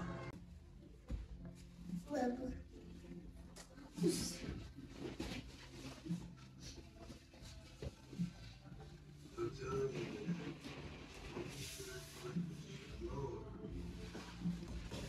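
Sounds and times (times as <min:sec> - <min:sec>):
soft rustling: 0:02.8 - 0:15.0.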